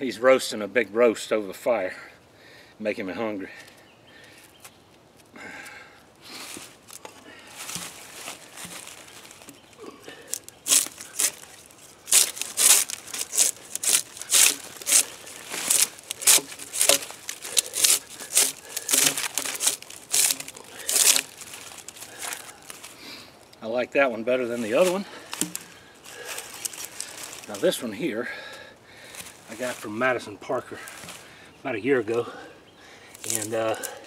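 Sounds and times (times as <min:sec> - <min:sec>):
draw knife scraping bark: 0:10.3 - 0:22.5.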